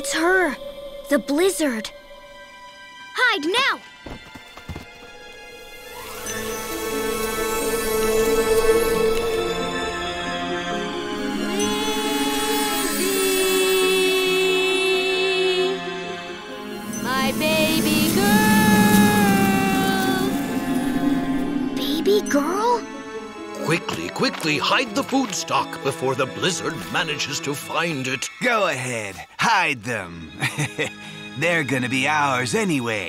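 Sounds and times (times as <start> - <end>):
quiet background music: 0.0 - 33.0
soft cartoon footstep thumps: 4.0 - 5.0
steady low drone: 6.0 - 25.0.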